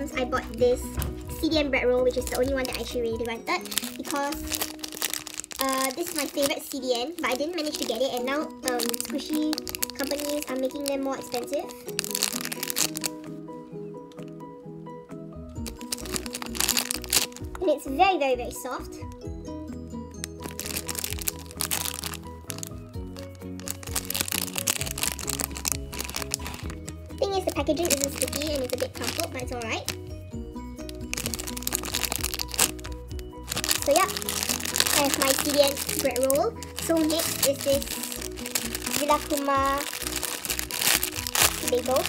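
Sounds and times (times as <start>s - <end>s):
plastic bag crinkling: 0.0s - 13.3s, 15.6s - 17.6s, 20.2s - 42.0s
background music: 0.0s - 42.0s.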